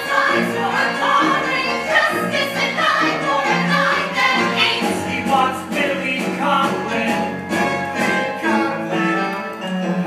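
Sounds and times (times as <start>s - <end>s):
chorus singing: 0.0s - 7.4s
instrumental accompaniment: 0.0s - 10.0s.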